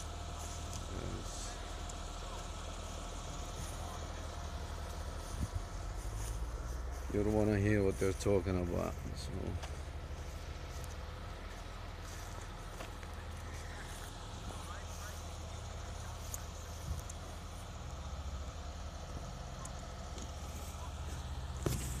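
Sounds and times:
diesel engine running: 0:00.0 - 0:22.0.

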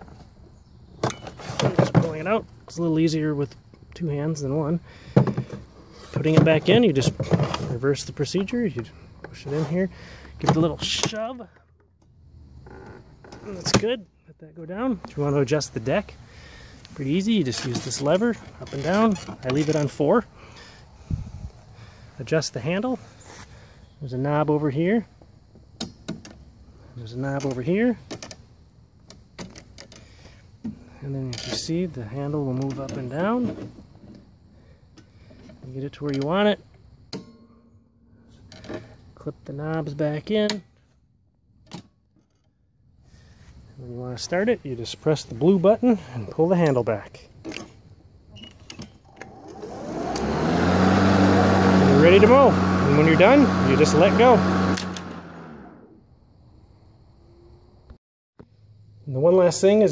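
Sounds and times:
lawn mower motor winding down: 0:12.5 - 0:13.8, 0:16.4 - 0:20.2, 0:49.0 - 0:56.0.

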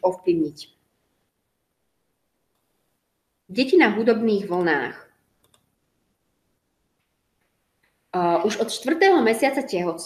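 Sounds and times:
very faint clicks: 0:05.4 - 0:05.7.

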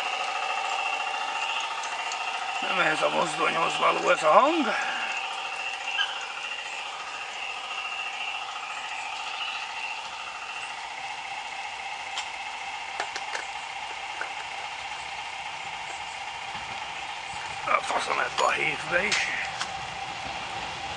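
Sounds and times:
tinny diesel engine chug: 0:00.0 - 0:20.9.

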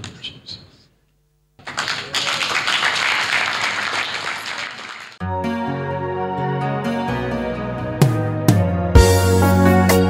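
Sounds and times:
audience applauding: 0:01.6 - 0:05.2.

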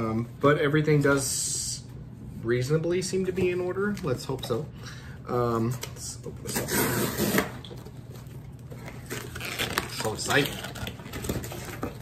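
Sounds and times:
cardboard crackles: 0:07.3 - 0:12.0.

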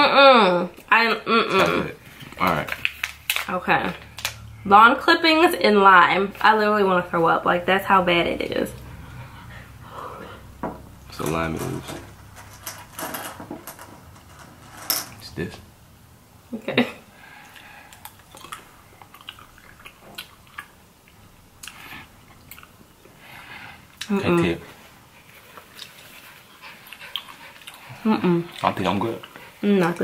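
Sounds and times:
jelly beans clicking and rustling: 0:02.2 - 0:04.5
faint breathing: 0:08.8 - 0:10.6, 0:17.1 - 0:18.2, 0:23.1 - 0:24.0.

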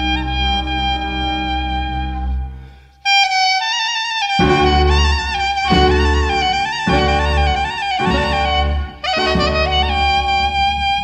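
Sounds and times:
clarinet playing slow melody: 0:00.0 - 0:11.0
sustained accompanying chord: 0:04.4 - 0:11.0.

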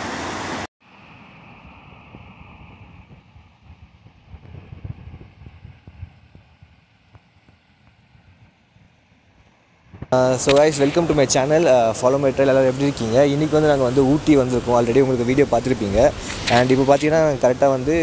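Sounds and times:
wind on microphone: 0:01.0 - 0:09.0, 0:09.8 - 0:18.0
water rushing over rocks: 0:10.2 - 0:18.0.

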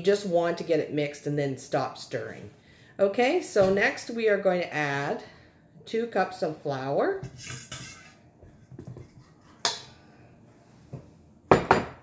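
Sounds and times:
spoon scraping flour in bowl: 0:07.2 - 0:10.0.

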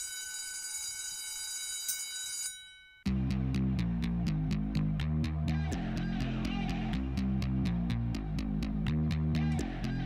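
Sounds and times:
bell-like ringing: 0:00.0 - 0:03.1
bass and drum beat: 0:03.1 - 0:10.0.

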